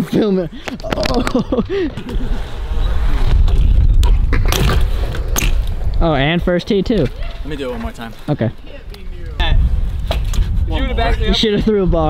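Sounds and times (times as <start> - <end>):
bike rolling on concrete: 0.7 - 12.0.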